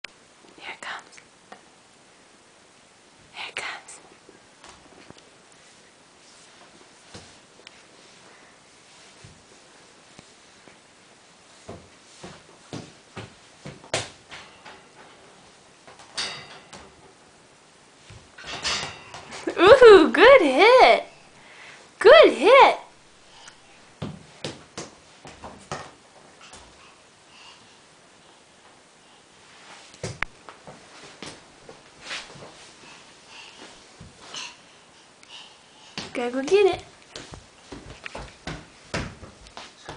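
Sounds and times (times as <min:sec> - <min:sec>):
person whispering: 0:00.6 - 0:01.2, 0:03.3 - 0:04.0.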